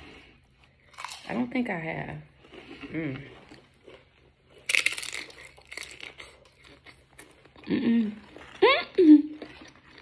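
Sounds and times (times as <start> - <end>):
chips crunching: 0.9 - 1.3, 2.4 - 8.6.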